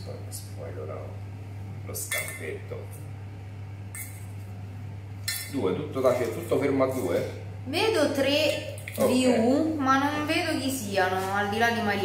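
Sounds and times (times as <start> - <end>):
steady low hum: 0.0 - 12.0
kitchenware clinking on counter: 2.1 - 2.6.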